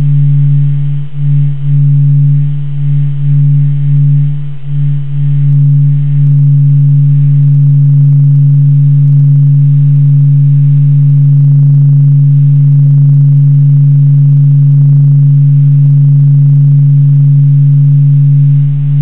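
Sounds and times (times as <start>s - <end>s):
loud deep hum: 0.0s - 19.0s.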